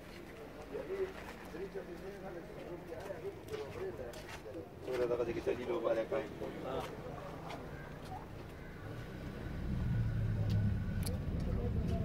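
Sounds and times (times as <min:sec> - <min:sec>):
murmur of men's voices: 0:00.0 - 0:12.0.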